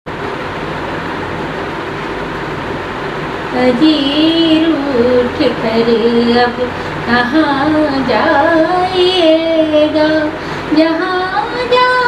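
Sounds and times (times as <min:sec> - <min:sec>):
faint low hum: 0:00.1 - 0:12.0
loud steady hiss: 0:00.1 - 0:12.0.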